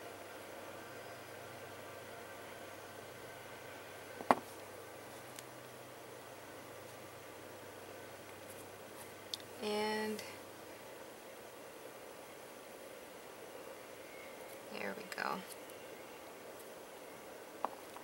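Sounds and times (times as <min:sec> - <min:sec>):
room hum: 0:00.0 - 0:18.0.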